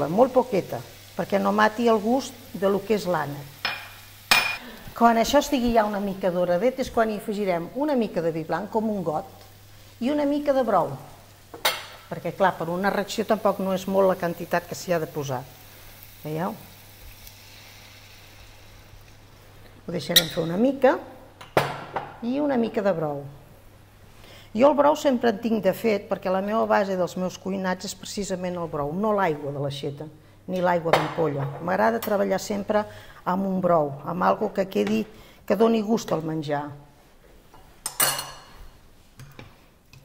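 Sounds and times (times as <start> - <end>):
food sizzling faintly in pan: 0.0 - 21.3
utensil clinking against cookware: 37.8 - 38.6.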